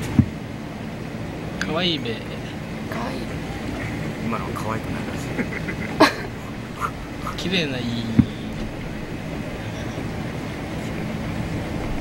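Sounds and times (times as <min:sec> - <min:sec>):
wind: 0:00.0 - 0:12.0.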